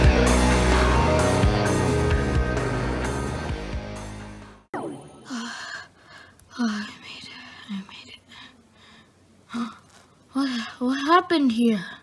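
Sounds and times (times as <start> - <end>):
person whispering: 6.6 - 8.5.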